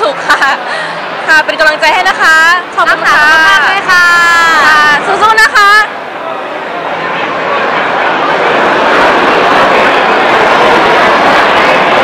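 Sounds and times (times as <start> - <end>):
babble of many voices: 0.0 - 12.0.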